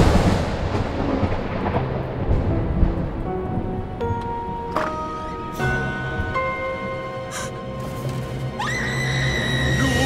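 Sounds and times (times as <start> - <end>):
thunder-like rumbling boom: 0.0 - 3.7.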